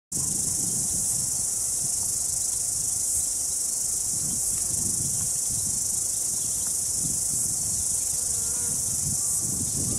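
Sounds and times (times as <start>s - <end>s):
insects chorus: 0.1s - 9.9s.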